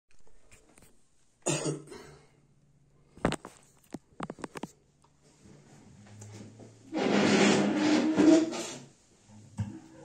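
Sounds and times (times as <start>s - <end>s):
man coughing: 1.5s - 2.3s.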